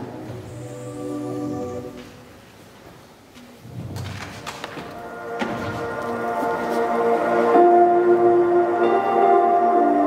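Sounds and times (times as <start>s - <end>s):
ambient synthesizer pad chords: 0.0s - 2.3s, 5.0s - 10.0s.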